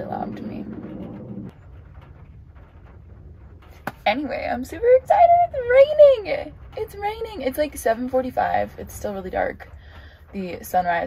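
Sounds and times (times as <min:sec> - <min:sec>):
pitched hum: 0:00.0 - 0:07.5
airplane low drone: 0:00.0 - 0:10.4.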